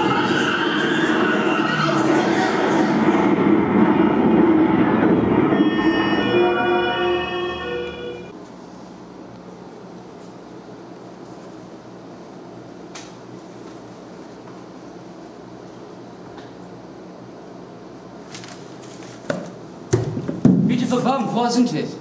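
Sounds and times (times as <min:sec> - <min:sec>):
blaring tones: 0:03.7 - 0:08.3.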